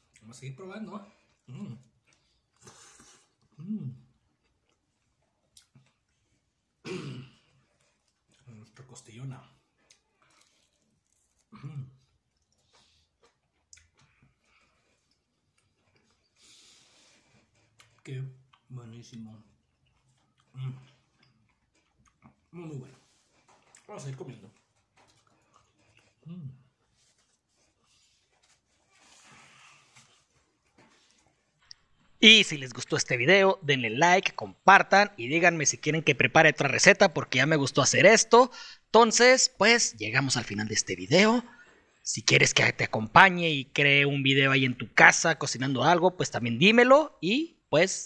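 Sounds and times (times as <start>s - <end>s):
man humming mm while eating: 2.6s - 4.2s, 26.2s - 26.8s
faint rustle of food: 7.4s - 31.7s.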